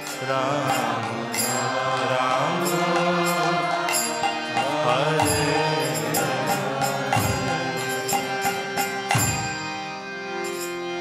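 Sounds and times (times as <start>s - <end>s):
man singing a chant: 0.0s - 9.0s
high percussion strokes: 0.0s - 9.8s
harmonium chords: 0.0s - 11.0s.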